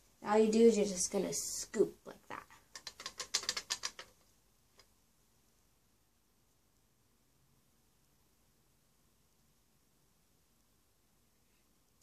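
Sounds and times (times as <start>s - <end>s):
light clicks and rattles: 2.7s - 4.9s.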